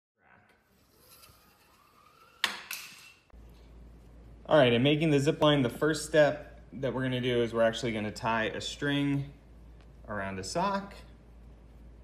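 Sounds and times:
pulley wheel whirring on string: 0.6s - 3.3s.

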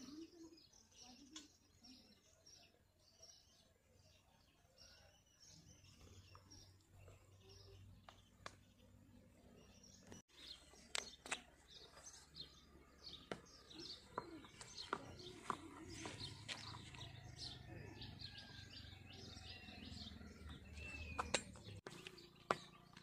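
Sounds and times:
small birds chirping: 0.0s - 23.0s.

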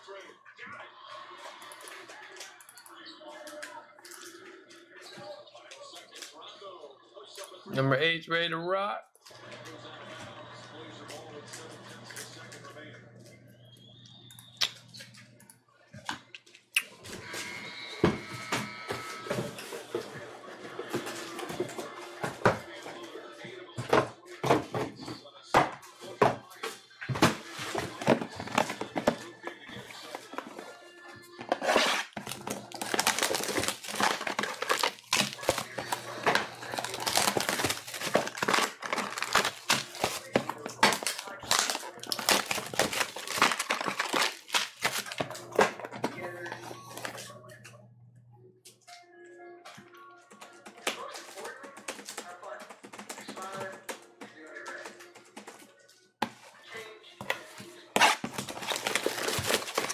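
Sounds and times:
crinkling plastic wrap and cardboard: 31.4s - 45.8s, 58.0s - 59.9s
background music: 45.2s - 59.9s.

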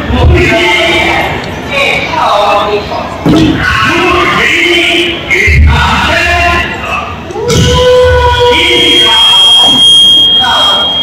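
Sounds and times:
high-pitched feedback whine: 7.5s - 11.0s.

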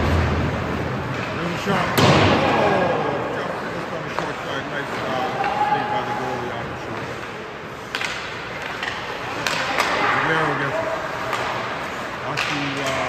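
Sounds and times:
skates scraping ice: 0.0s - 13.0s
sticks and puck clacking: 1.0s - 2.2s, 3.5s - 13.0s
distant shout: 5.1s - 6.5s.

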